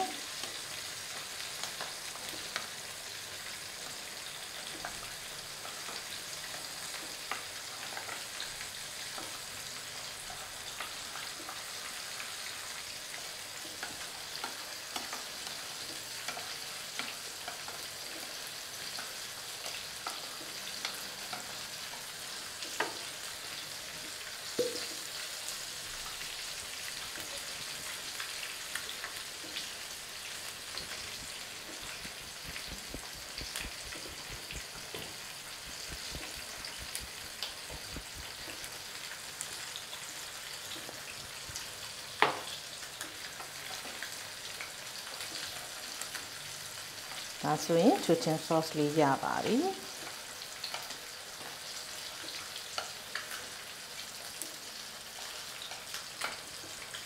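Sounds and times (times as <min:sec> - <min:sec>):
steady hiss: 0:25.4 - 0:42.7.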